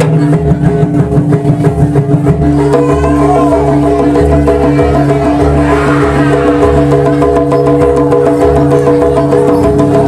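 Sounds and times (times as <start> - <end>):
hand drum strokes: 0.0 - 10.0
low pulse: 1.0 - 9.3
ringing pitched gong tones: 4.0 - 8.6.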